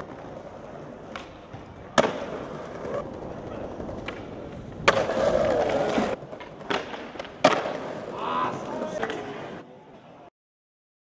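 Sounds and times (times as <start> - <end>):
skateboard tail clack: 0.0 - 9.4
skateboard landing: 0.0 - 9.6
skateboard wheels rolling on tiles: 0.0 - 9.6.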